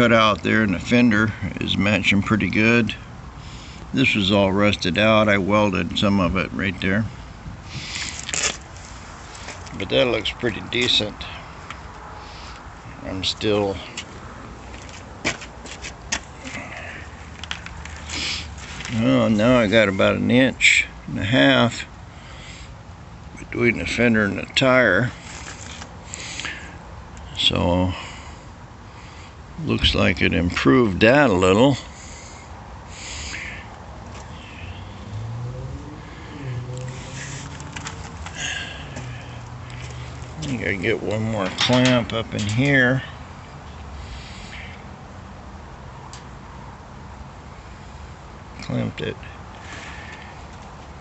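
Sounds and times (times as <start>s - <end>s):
handling clicks and knocks: 40.4s - 42.7s.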